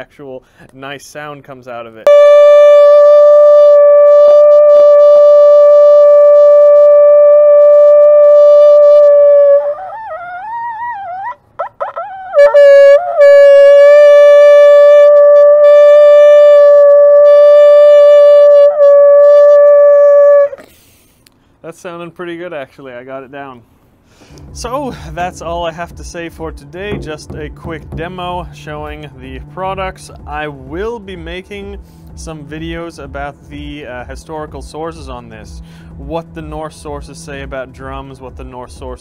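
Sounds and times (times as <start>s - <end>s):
ram's horn blown: 2.1s - 10.1s, 12.3s - 20.7s, 24.2s - 38.5s.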